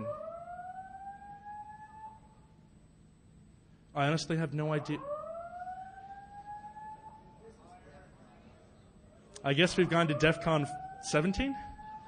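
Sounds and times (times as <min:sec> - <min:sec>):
alarm siren rising tone: 0:00.0 - 0:02.5, 0:04.7 - 0:07.4, 0:09.7 - 0:12.0.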